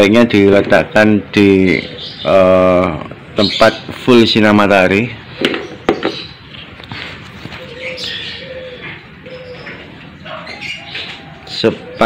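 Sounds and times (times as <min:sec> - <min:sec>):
higher bird chirps: 0:01.4 - 0:12.0
bird cooing: 0:07.4 - 0:12.0.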